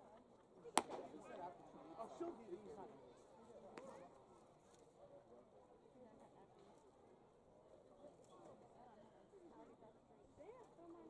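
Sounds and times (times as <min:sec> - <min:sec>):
faint crowd chatter: 0:00.0 - 0:11.0.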